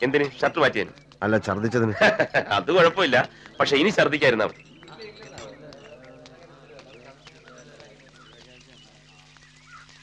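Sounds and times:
faint footsteps: 0:00.0 - 0:10.0
quiet voices: 0:02.5 - 0:09.8.

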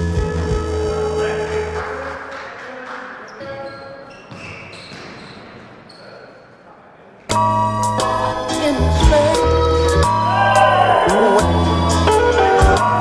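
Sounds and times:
background music: 0:00.0 - 0:02.6, 0:07.3 - 0:13.0
basketball bouncing on hard court: 0:04.2 - 0:05.6.

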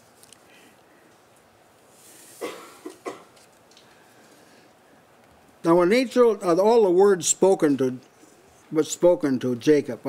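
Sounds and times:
person coughing: 0:02.4 - 0:03.4.

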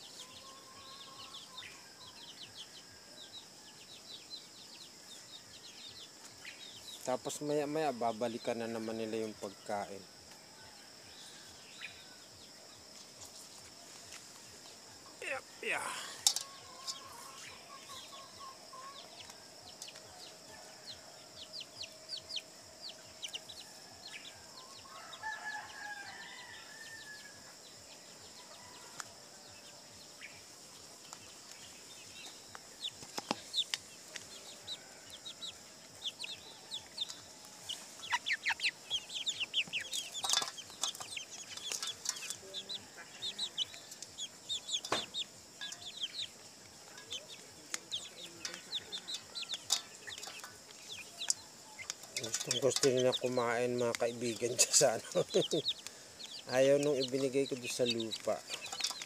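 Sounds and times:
chickens clucking: 0:15.2 - 0:20.0, 0:32.6 - 0:59.0
beaks pecking on metal: 0:36.9 - 0:59.0.

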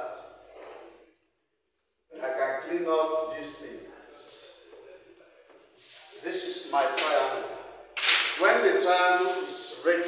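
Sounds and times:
man talking: 0:00.0 - 0:00.4, 0:02.1 - 0:10.0.

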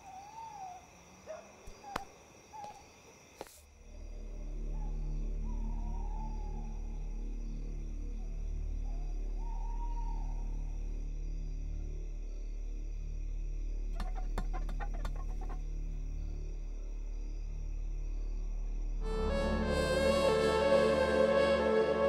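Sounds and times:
low drone with high tones: 0:19.0 - 0:22.0.

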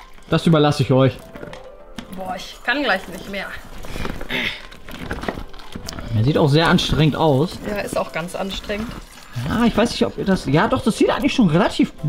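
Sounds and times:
plastic pool wall crinkling: 0:00.0 - 0:12.0
slime stirring squelches: 0:00.0 - 0:12.0.

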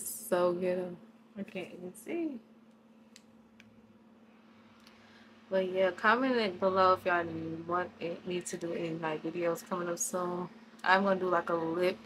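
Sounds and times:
faint steady low hum: 0:00.0 - 0:12.0.

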